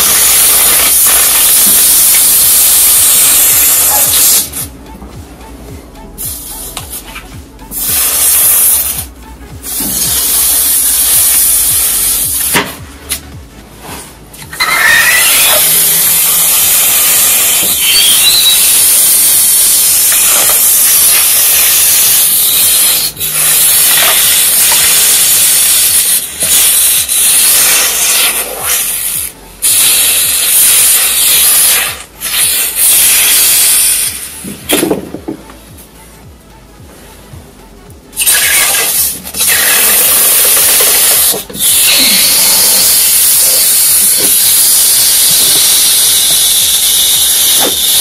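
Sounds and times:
hot knife sizzling through ice: 0:00.0 - 0:04.6, 0:07.7 - 0:09.0, 0:09.7 - 0:12.6, 0:14.6 - 0:34.8, 0:38.2 - 0:48.0.

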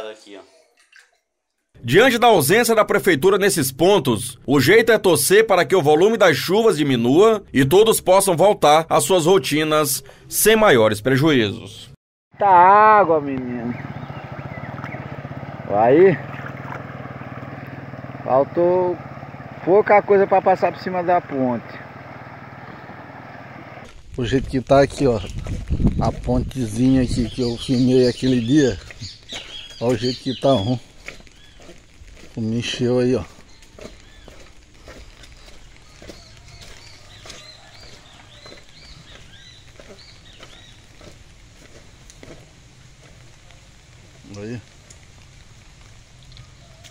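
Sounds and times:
bird chirping: 0:12.8 - 0:23.8, 0:26.5 - 0:31.8, 0:32.4 - 0:41.2
motorcycle engine running: 0:13.1 - 0:23.8.

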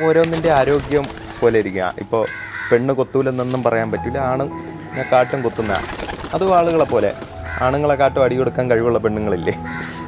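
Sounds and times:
man talking: 0:00.0 - 0:09.7.

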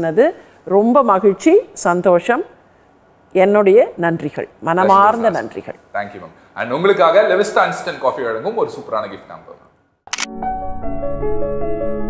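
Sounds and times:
camera shutter click: 0:10.1 - 0:10.3.

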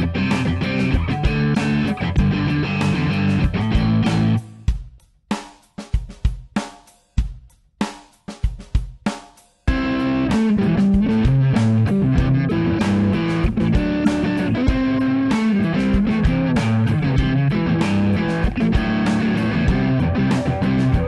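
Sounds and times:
electric guitar riff: 0:00.0 - 0:04.6, 0:09.7 - 0:21.0
drum beat: 0:00.0 - 0:21.0.

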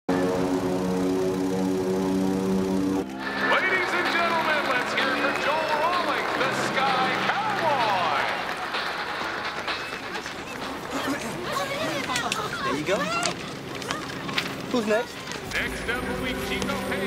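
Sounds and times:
propeller plane engine droning: 0:00.1 - 0:17.0
crowd cheering and whistling: 0:03.0 - 0:10.9.

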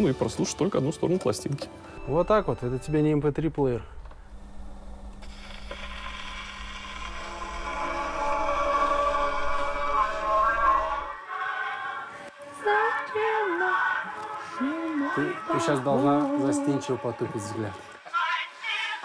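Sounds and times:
low hum: 0:02.0 - 0:12.2
old song on gramophone: 0:08.3 - 0:19.0.

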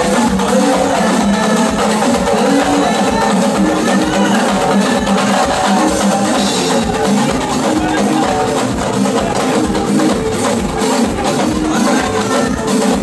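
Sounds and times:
loud drum-led festival music: 0:00.0 - 0:13.0.

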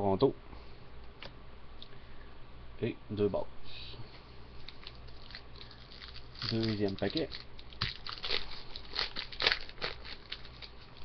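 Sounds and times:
wrapper tearing and crinkling: 0:04.6 - 0:11.0.

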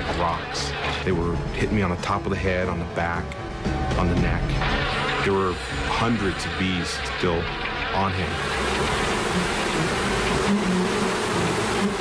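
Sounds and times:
bees buzzing: 0:08.3 - 0:12.0.

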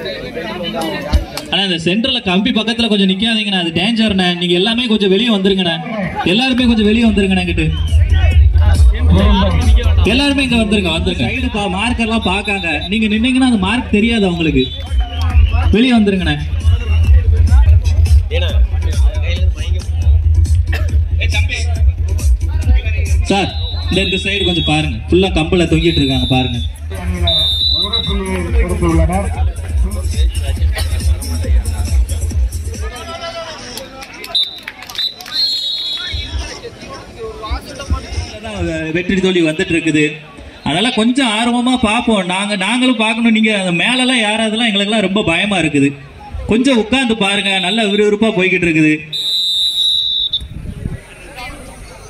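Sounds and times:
crowd: 0:00.0 - 0:52.0
man speaking loudly: 0:01.5 - 0:14.8, 0:15.4 - 0:17.6, 0:22.6 - 0:29.5, 0:38.4 - 0:49.2
low thumping rumble: 0:06.6 - 0:23.4
referee's whistle blast: 0:12.0 - 0:13.2, 0:14.1 - 0:16.0, 0:23.4 - 0:28.3, 0:34.3 - 0:36.3, 0:47.4 - 0:48.0, 0:49.1 - 0:50.5.

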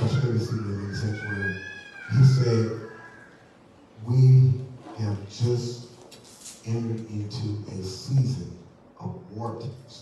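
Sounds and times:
man's voice: 0:00.0 - 0:03.2, 0:04.0 - 0:06.0, 0:06.6 - 0:10.0
high-pitched drawn-out cry: 0:00.0 - 0:03.4.

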